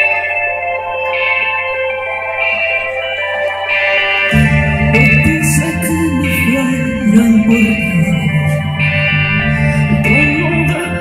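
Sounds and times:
electric guitar chords: 0:00.0 - 0:11.0.

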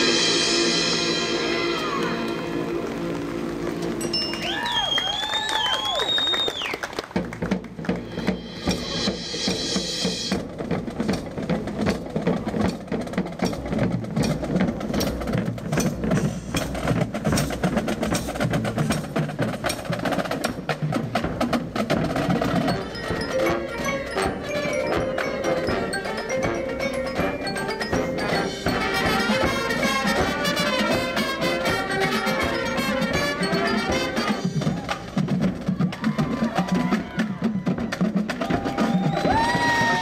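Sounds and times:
mallet percussion: 0:00.0 - 0:04.9, 0:07.2 - 0:40.0
brass and wind chord: 0:22.9 - 0:34.6
snare drum rolls: 0:27.6 - 0:40.0.

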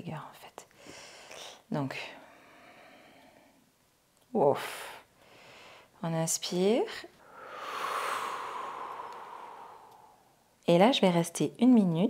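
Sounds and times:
slow exhalation through the mouth: 0:07.2 - 0:10.5.

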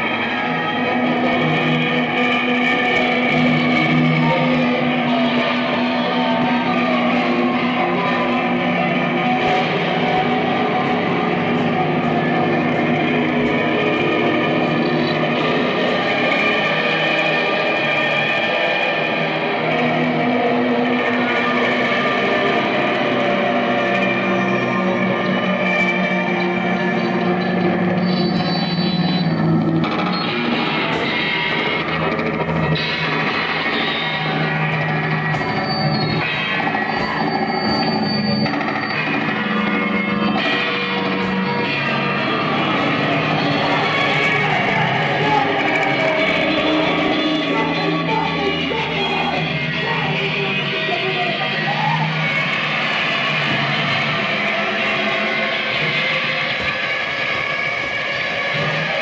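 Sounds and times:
distorted electric guitar noise music: 0:00.0 - 0:59.0.

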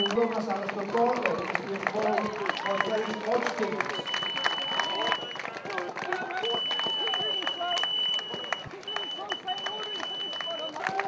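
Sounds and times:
runners' footsteps: 0:00.0 - 0:11.0
voices of spectators: 0:00.0 - 0:11.0.

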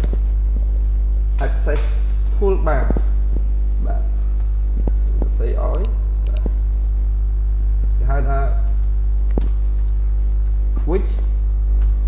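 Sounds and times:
electrical mains hum: 0:00.0 - 0:12.0
faint clicks: 0:05.7 - 0:06.5.

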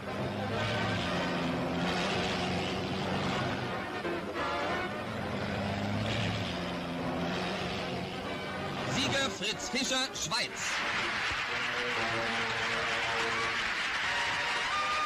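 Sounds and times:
background music: 0:00.0 - 0:15.0
racing cars passing at speed: 0:00.0 - 0:15.0.

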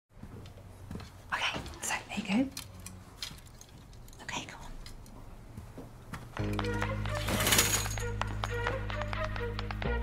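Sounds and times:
person whispering: 0:04.2 - 0:04.9.

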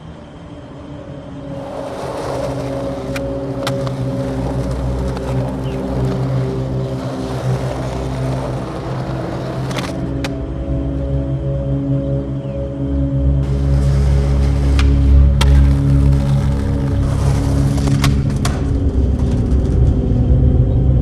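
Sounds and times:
skateboard wheels rolling on pavement: 0:01.1 - 0:11.5, 0:13.4 - 0:21.0
skateboard clacks: 0:01.6 - 0:10.4, 0:13.5 - 0:20.0.

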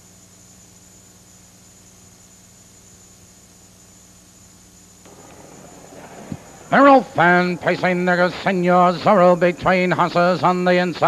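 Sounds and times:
hiss and electrical hum: 0:00.0 - 0:11.0.

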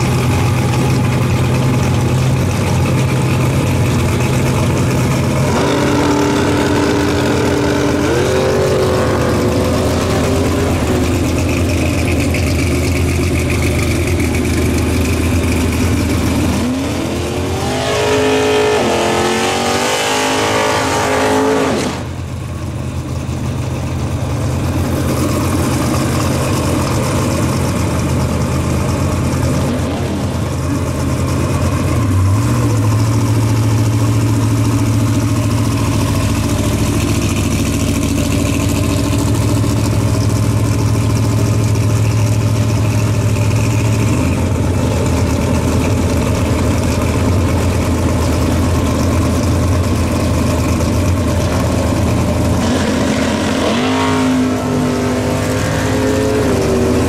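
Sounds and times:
drag car engine idling and revving: 0:00.0 - 0:57.0.

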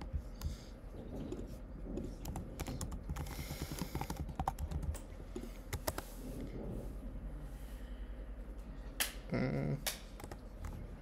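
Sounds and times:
man wordless voiced sound: 0:09.3 - 0:09.8.

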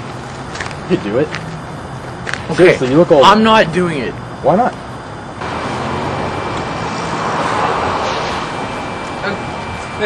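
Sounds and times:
vehicle passing close by: 0:05.4 - 0:10.0.

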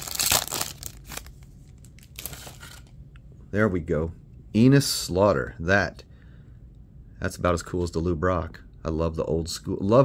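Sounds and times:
wrapper crinkling and tearing: 0:00.0 - 0:02.9.

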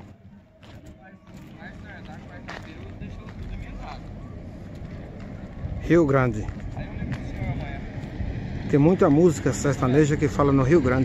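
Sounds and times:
faint indistinct voices: 0:00.0 - 0:11.0
low rumble: 0:00.9 - 0:11.0.

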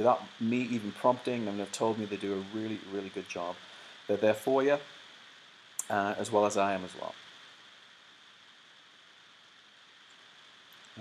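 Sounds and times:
faint microphone hiss: 0:00.0 - 0:11.0.

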